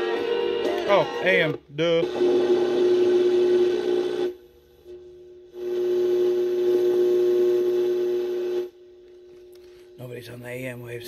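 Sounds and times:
radio static with whine: 0:00.9 - 0:04.3.

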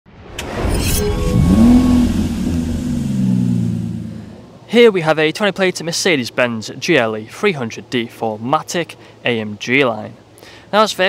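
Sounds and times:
car engine revving: 0:01.0 - 0:04.6.

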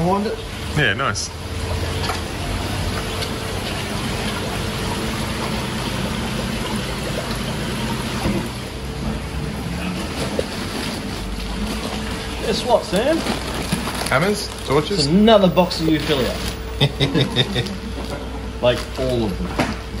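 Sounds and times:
low pump hum: 0:00.0 - 0:20.0
running water: 0:00.0 - 0:20.0.

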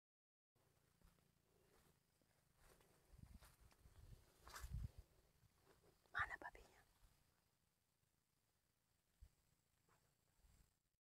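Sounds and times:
person whispering: 0:06.1 - 0:06.9.

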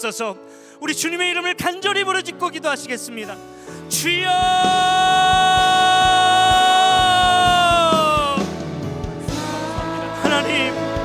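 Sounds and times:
soft instrumental music: 0:00.0 - 0:11.0
man shouting into a microphone: 0:03.9 - 0:08.5.

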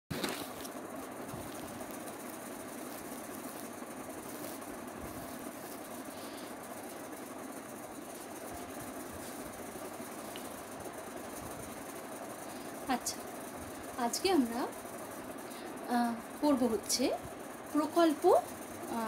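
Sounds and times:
machine hum and rush: 0:00.2 - 0:19.0.

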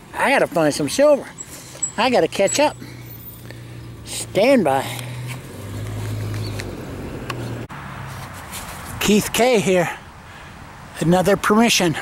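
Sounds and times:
faint outdoor background noise: 0:00.0 - 0:12.0.

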